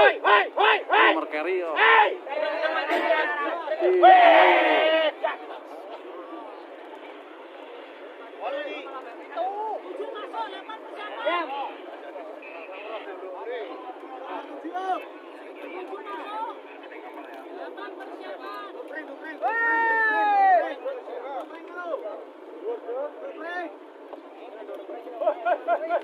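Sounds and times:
man shouting: 0.0s - 5.2s
crowd of men talking: 0.0s - 26.0s.

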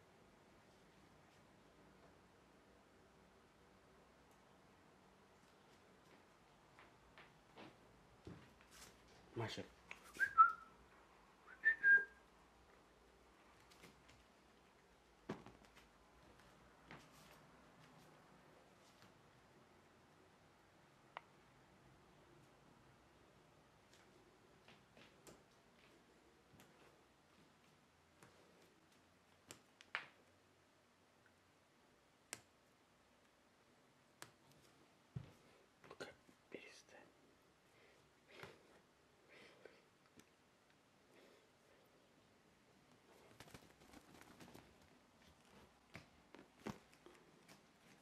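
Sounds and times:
person whistling two-note call: 10.1s - 10.7s, 11.5s - 12.1s
faint whispering: 35.8s - 39.9s.

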